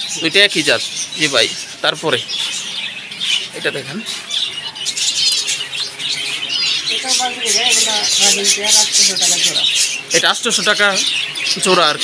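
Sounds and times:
cage birds chirping: 0.0s - 12.0s.

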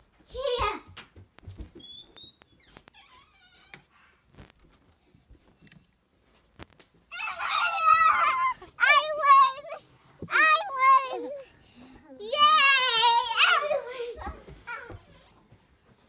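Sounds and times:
child wailing: 7.1s - 9.1s.

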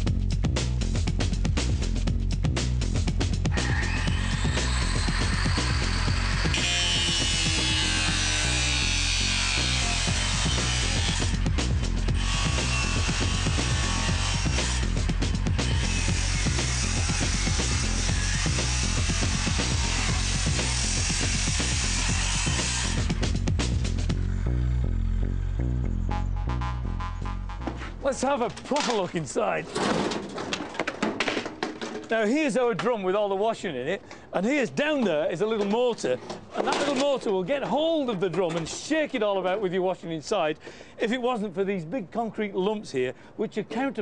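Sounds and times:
background music with beat: 0.0s - 6.5s, 22.4s - 24.2s, 25.7s - 28.0s
power tool cutting: 3.5s - 24.1s.

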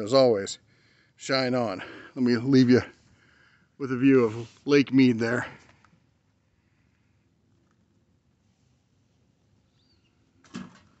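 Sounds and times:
faint bird chirp: 9.6s - 10.3s.

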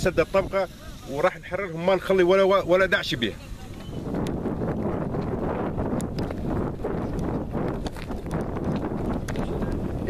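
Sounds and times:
wind rumbling on microphone: 0.0s - 10.0s
hurried footsteps on stony dirt: 3.7s - 10.0s.

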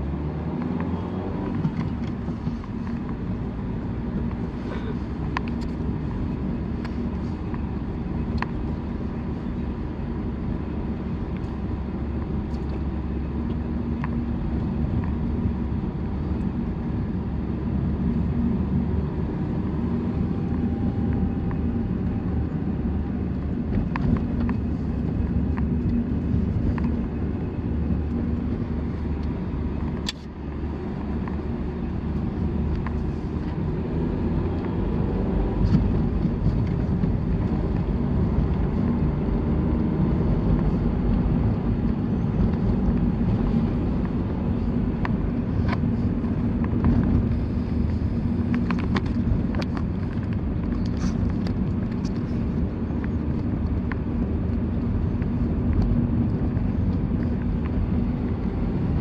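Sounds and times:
engine and tyre rumble: 0.0s - 59.0s.

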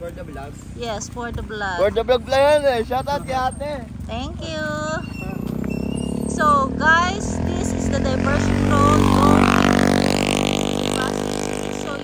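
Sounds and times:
motorcycle engine passing: 0.0s - 12.0s.

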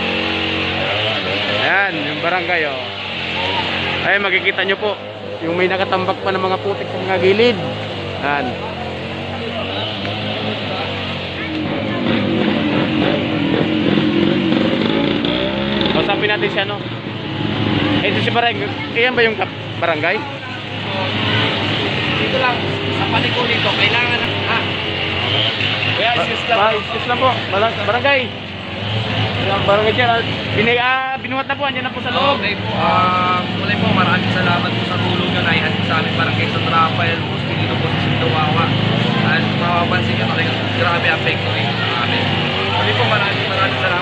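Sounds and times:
people talking: 0.8s - 13.2s, 15.4s - 16.8s, 18.0s - 28.4s, 29.2s - 44.0s.

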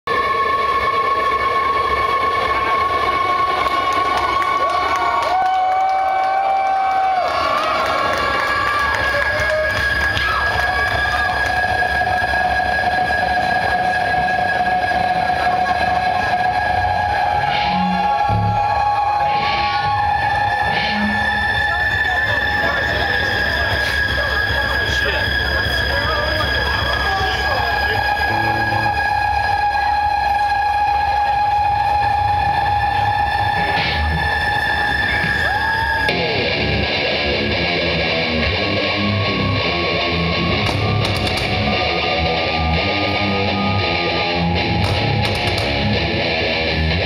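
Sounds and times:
crowd cheering: 0.1s - 47.0s
droning tones from sound system: 8.0s - 47.0s.

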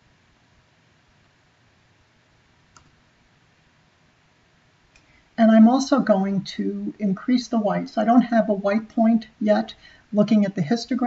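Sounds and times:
computer mouse click: 2.7s - 3.0s.

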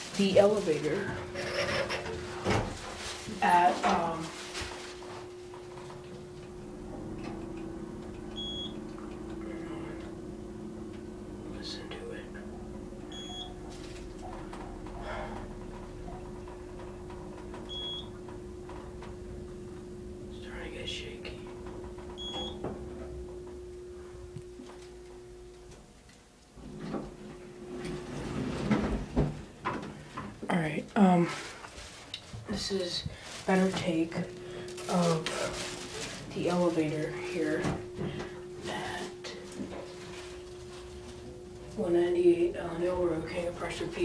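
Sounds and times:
elevator machinery hum: 0.0s - 44.0s
lower hum: 0.0s - 44.0s
elevator door sliding open: 26.6s - 29.5s.

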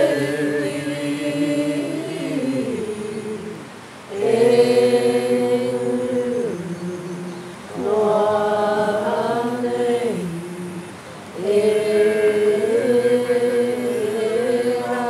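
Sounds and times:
voices chanting: 0.0s - 15.0s.

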